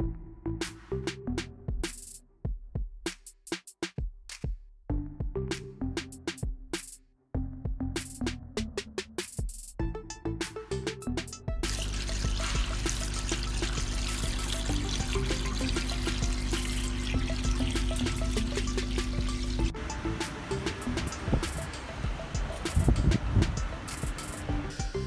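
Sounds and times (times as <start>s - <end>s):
background music with a beat: 0.0s - 25.0s
pressure washer spraying: 11.6s - 24.5s
motor hum: 11.6s - 24.9s.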